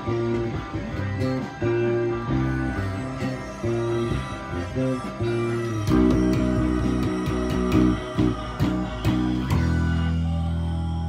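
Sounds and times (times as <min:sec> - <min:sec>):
electric bass guitar plucked: 0:00.0 - 0:11.0.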